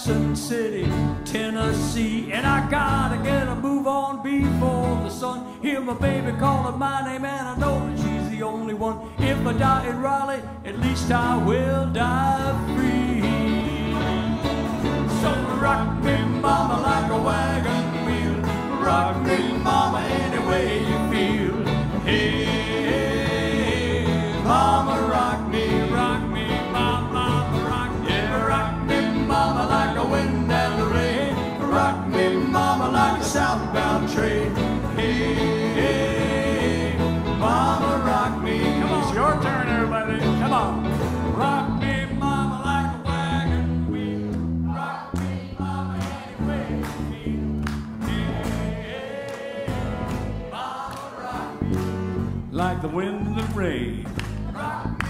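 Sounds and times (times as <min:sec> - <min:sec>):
country band playing: 0:00.0 - 0:55.0
bent lead guitar notes: 0:11.0 - 0:44.6.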